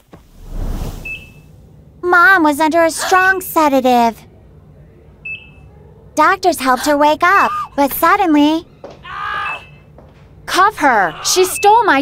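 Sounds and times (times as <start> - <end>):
low cartoon rumble: 0.0 - 2.0
short high beep: 0.9 - 1.4.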